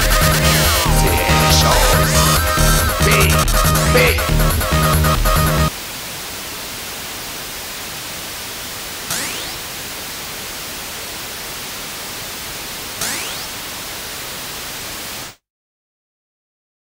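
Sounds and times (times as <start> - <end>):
synthesizer sweeping zaps: 0.0 - 5.6, 9.1 - 9.7
synthesizer white-noise hiss: 0.0 - 15.4.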